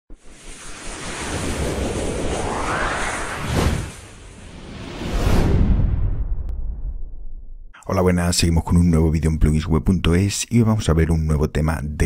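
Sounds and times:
rushing whoosh: 0:00.1 - 0:07.4.

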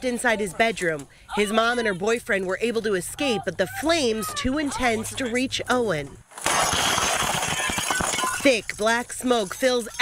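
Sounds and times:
fire crackling and clattering: 0:06.3 - 0:10.0.

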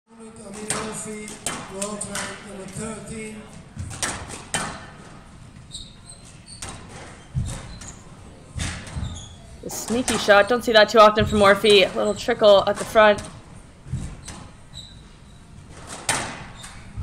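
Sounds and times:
shoes squeaking on court floor: 0:00.2 - 0:17.0
squash ball hitting rackets and walls: 0:00.4 - 0:17.0.

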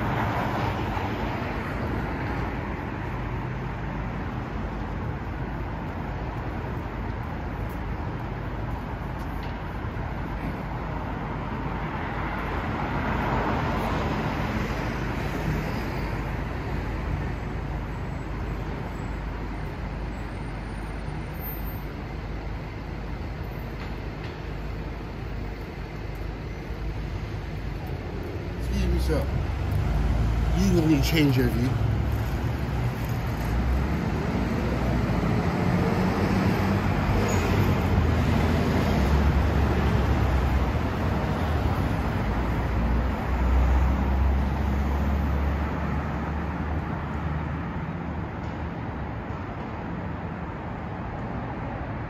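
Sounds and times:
steady traffic hum: 0:00.0 - 0:52.0
vehicles passing: 0:00.0 - 0:52.0.

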